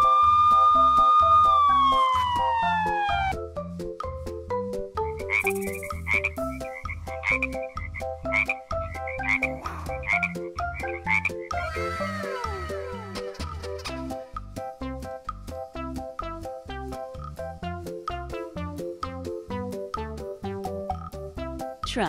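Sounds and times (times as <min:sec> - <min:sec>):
descending whistle-like tone: 0:00.0 - 0:03.4
children's music with steady beat: 0:01.8 - 0:22.0
frog croaking: 0:05.1 - 0:12.7.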